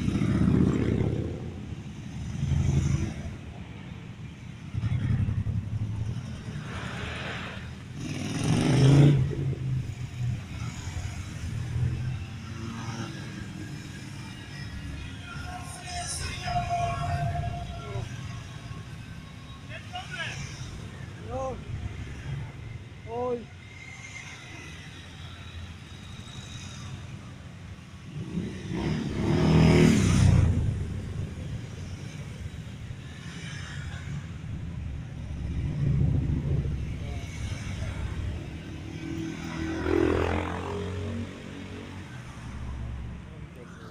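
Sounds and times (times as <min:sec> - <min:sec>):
motorcycles riding past: 0:00.0 - 0:03.4, 0:04.5 - 0:43.9.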